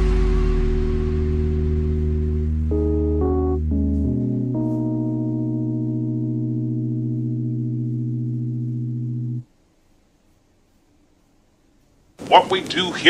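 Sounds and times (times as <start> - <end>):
sustained bell-like chord: 0.0 - 9.4.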